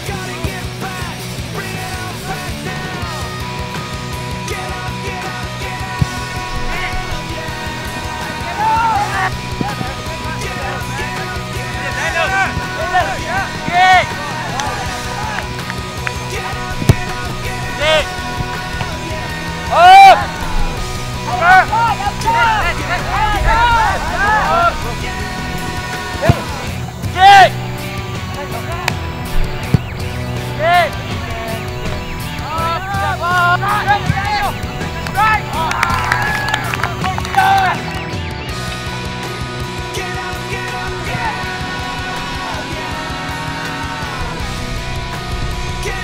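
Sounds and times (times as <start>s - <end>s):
rock music with singing: 0.0s - 46.0s.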